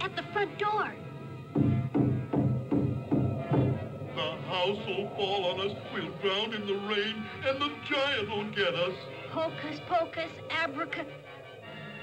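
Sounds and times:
suspenseful film music: 0.0s - 12.0s
low repeated beats: 1.0s - 5.2s.

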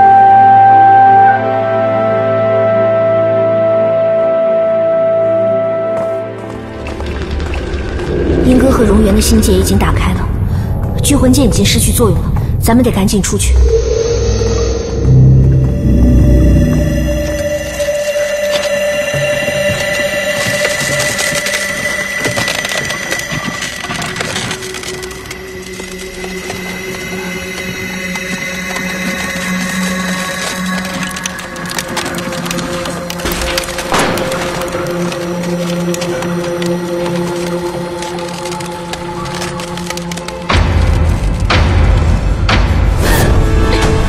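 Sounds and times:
dramatic film score: 0.0s - 44.0s
crackling and snapping effects: 6.4s - 12.0s, 13.2s - 44.0s.

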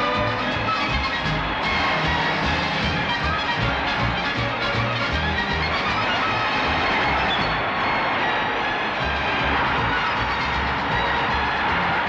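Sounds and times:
brass marching band playing: 0.0s - 7.8s, 9.0s - 12.0s
stadium crowd noise: 0.0s - 12.0s.

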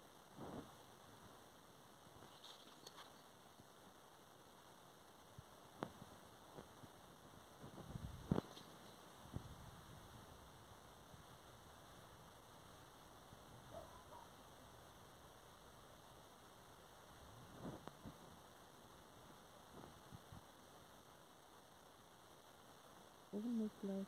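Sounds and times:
faint hiss: 0.0s - 24.0s.

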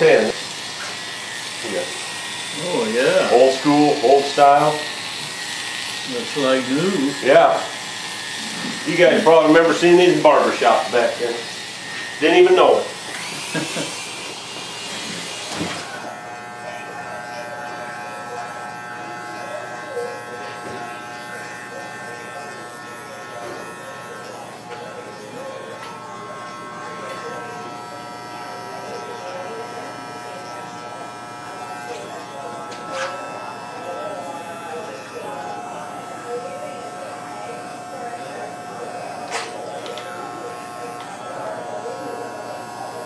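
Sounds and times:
electric hair clipper buzzing: 0.0s - 43.0s.

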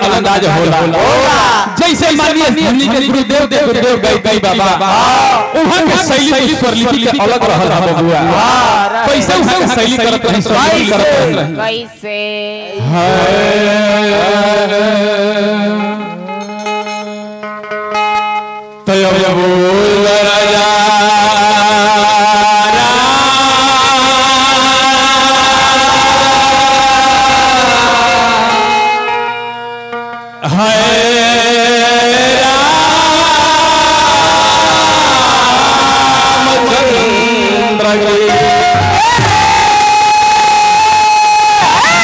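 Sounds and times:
man singing long held note: 12.7s - 16.4s, 18.8s - 29.4s, 30.4s - 42.0s.

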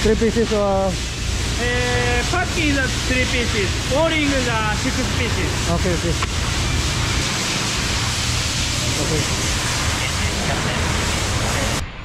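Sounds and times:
workshop rushing noise with rumble: 0.0s - 12.0s.

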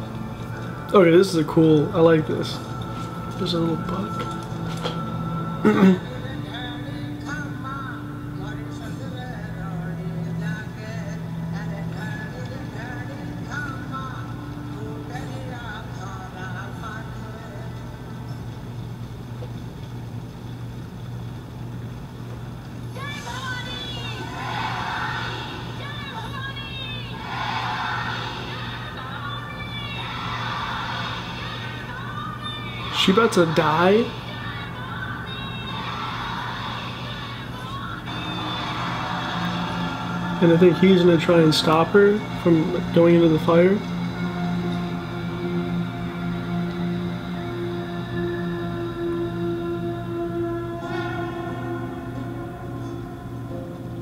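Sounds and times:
steady low hum: 0.0s - 54.0s
women's chorus chanting: 23.2s - 41.2s, 43.9s - 54.0s
low drone notes: 37.4s - 54.0s.

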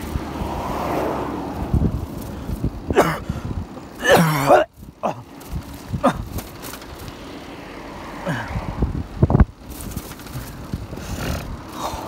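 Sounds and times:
bicycle tyres rumbling on asphalt: 0.0s - 12.0s
wind on microphone: 8.6s - 11.7s.

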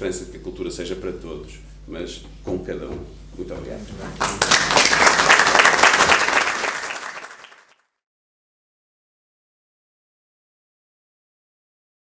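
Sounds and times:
audience applauding: 4.2s - 7.8s.

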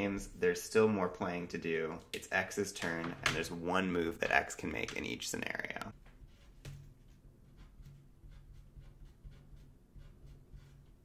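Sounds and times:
pen scratching on paper: 6.1s - 11.0s.

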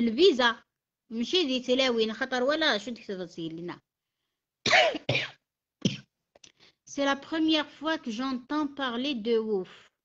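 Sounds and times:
woman coughing: 4.6s - 6.1s.

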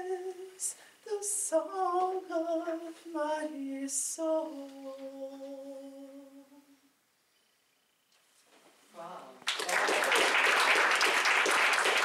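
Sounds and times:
woman singing a cappella: 0.0s - 6.9s.

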